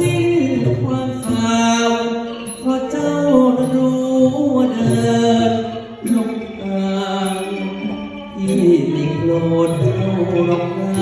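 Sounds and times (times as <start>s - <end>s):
man singing through microphone: 0.0s - 11.0s.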